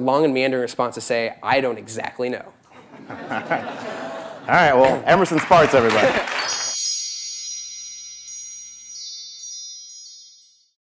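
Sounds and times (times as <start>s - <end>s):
high bell-like chimes: 6.3s - 10.8s.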